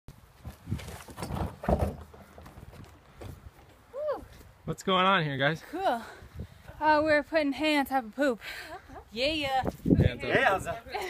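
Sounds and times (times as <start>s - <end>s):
plastic wheelbarrow knocks and scrapes: 0.4s - 2.8s.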